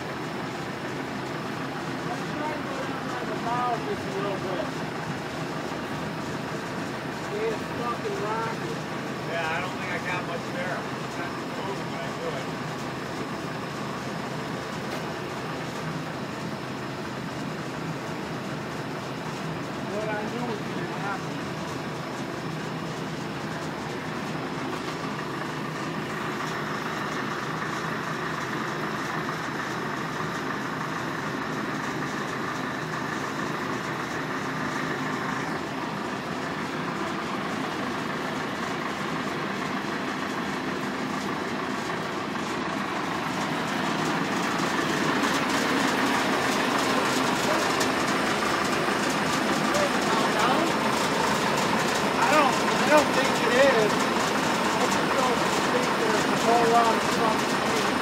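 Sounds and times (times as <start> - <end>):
machine humming: 0.0 - 58.0.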